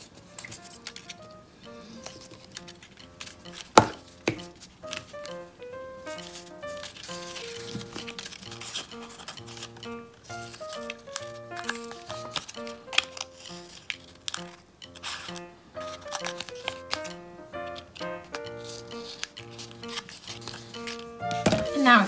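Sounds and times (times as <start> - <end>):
scissors snipping paper: 0.0 - 22.0
background music of short notes: 0.1 - 22.0.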